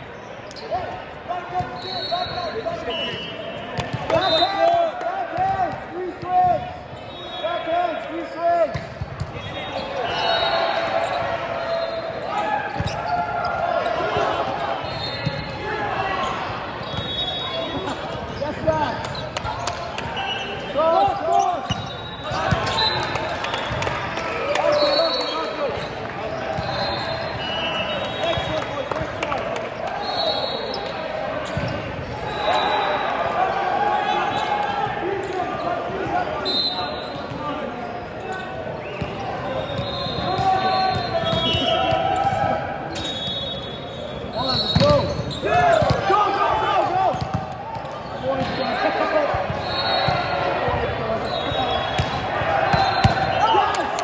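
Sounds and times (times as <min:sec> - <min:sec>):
shoes squeaking on court floor: 0:00.1 - 0:04.7, 0:08.7 - 0:23.8, 0:24.6 - 0:29.1, 0:29.8 - 0:32.8, 0:35.2 - 0:53.5
volleyball contacts: 0:44.4 - 0:54.0.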